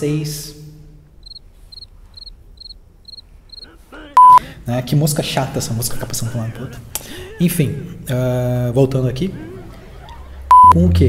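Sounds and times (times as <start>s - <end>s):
faint high chirps: 1.2s - 4.4s
man speaking: 3.6s - 9.6s
electronic beep tone: 4.2s - 4.4s, 10.5s - 10.8s.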